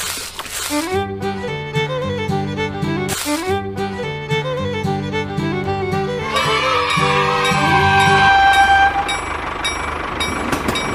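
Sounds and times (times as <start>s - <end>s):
toy train horn tone: 6.2s - 9.4s.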